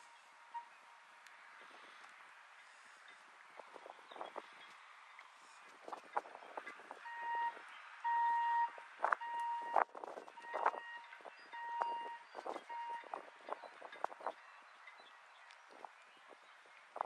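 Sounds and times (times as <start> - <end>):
electronic alarm beeping: 7.0 - 9.8, 10.4 - 13.2.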